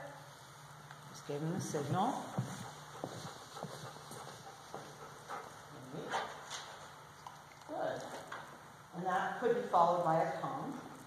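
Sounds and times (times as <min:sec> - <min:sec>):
footsteps on hard floor: 0:01.4 - 0:05.6.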